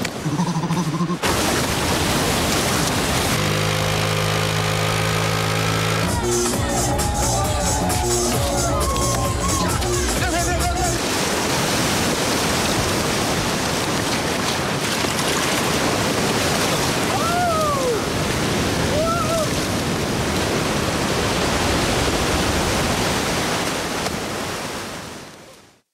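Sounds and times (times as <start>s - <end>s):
ocean waves breaking: 0.0s - 25.8s.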